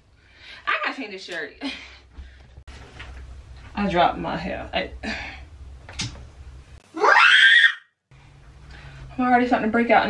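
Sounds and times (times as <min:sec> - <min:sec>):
woman squealing: 0:07.0 - 0:07.8.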